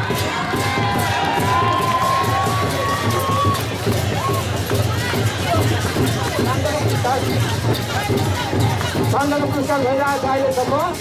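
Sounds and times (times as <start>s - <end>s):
person holding long high cheer: 0.0s - 4.5s
crowd clapping and cheering: 0.0s - 11.0s.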